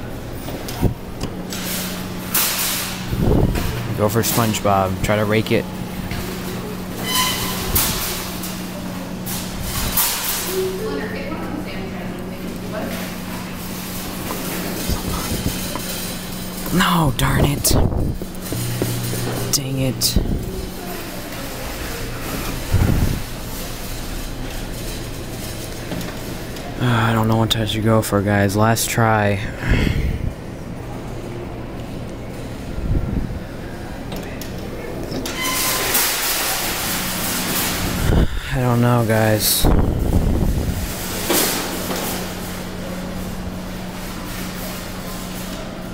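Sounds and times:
claw machine hum: 0.0s - 45.9s.

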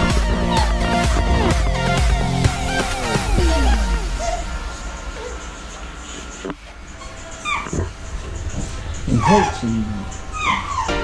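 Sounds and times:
dog-like whimper: 3.2s - 4.6s, 7.0s - 7.9s, 9.1s - 11.0s.

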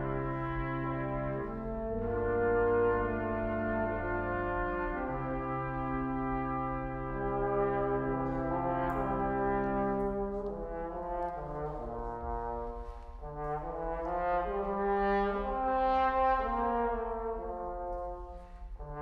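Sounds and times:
brass quintet playing chords: 0.0s - 19.0s.

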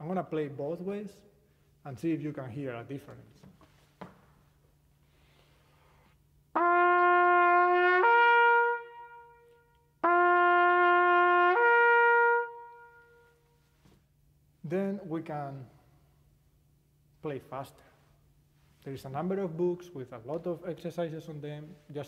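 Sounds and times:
trumpet playing a lip slur: 6.6s - 13.3s.

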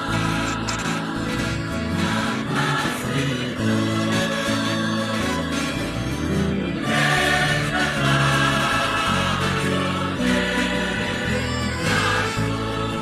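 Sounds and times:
choir singing a hymn: 0.0s - 13.0s
instrumental accompaniment: 0.0s - 13.0s.

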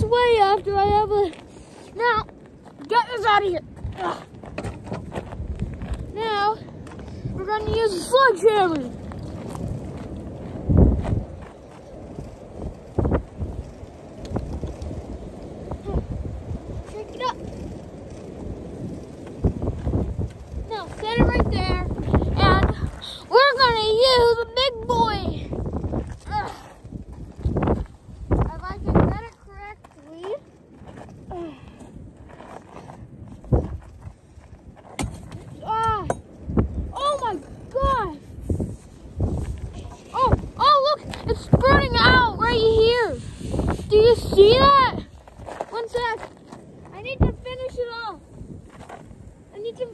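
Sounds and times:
gravel crunching: 0.0s - 49.9s
wind buffeting microphone: 0.0s - 49.9s
footsteps crunching on gravel: 0.5s - 7.8s, 8.7s - 12.2s, 25.6s - 35.6s, 44.9s - 47.4s, 48.3s - 49.4s.

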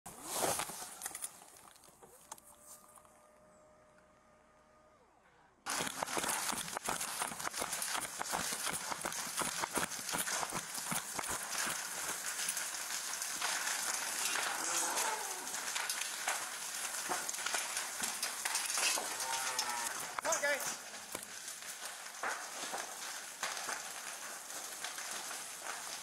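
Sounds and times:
fire crackling: 0.1s - 3.1s, 5.7s - 26.0s
footsteps: 5.7s - 26.0s.

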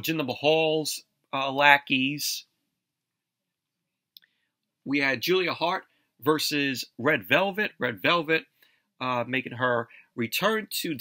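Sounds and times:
man speaking: 0.0s - 2.6s, 4.8s - 11.0s.

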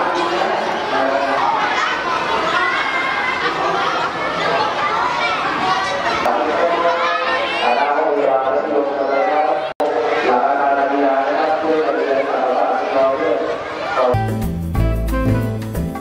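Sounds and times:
children chattering and calling out: 0.0s - 14.2s
music with heavy bass beat: 14.2s - 16.0s.

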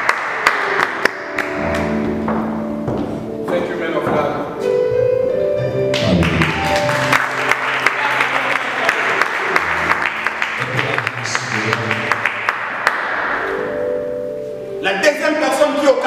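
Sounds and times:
audience applause: 0.0s - 1.8s, 5.9s - 13.4s
music with low chords: 0.8s - 7.8s.

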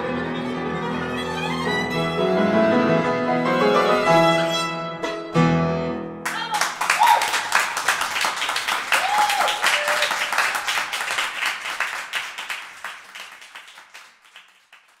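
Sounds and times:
audience applauding: 6.2s - 15.0s.

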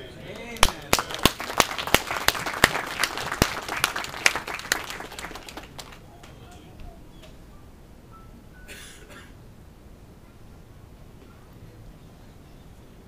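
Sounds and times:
audience applauding: 0.3s - 6.6s
close sharp claps: 0.3s - 7.4s.

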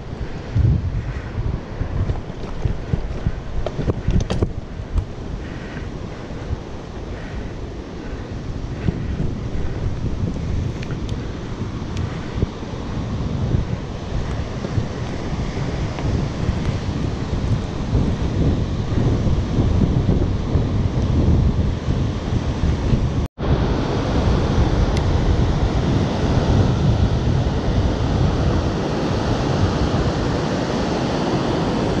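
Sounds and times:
sea surf washing: 0.0s - 32.0s
wind buffeting microphone: 0.0s - 32.0s.

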